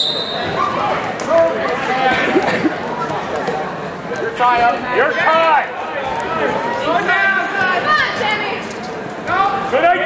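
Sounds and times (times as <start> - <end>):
referee's whistle blast: 0.0 - 0.5.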